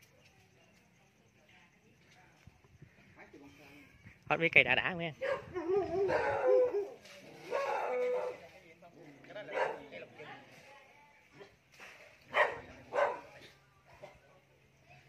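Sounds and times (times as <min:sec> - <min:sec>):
dog barking: 0:05.2 - 0:08.4, 0:09.4 - 0:10.0, 0:12.3 - 0:13.4.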